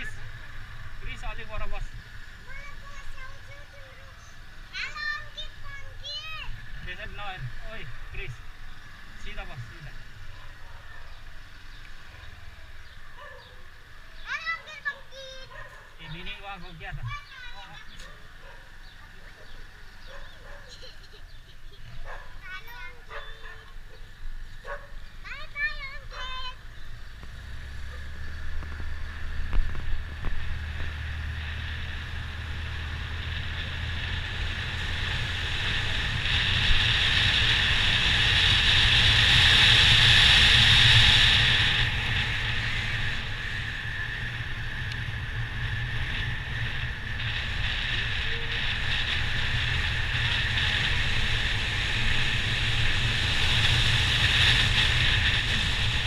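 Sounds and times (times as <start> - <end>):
motorbike engine hum: 0.0 - 56.0
wind noise: 27.2 - 56.0.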